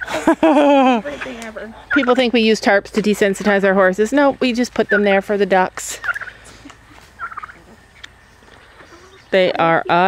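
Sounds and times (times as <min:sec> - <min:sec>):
ducks calling softly: 0:01.1 - 0:02.5, 0:04.2 - 0:10.0.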